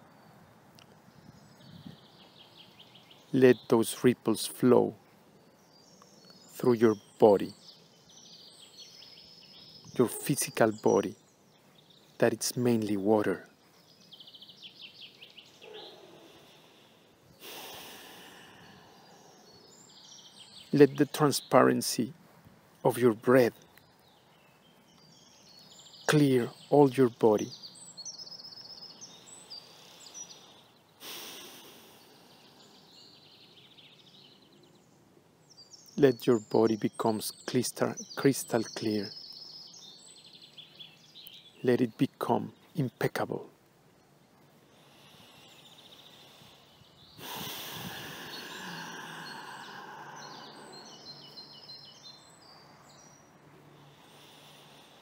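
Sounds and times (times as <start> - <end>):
birds chirping faintly: 0.0 - 55.0
breath rushing into microphone: 16.0 - 19.6, 44.7 - 51.4.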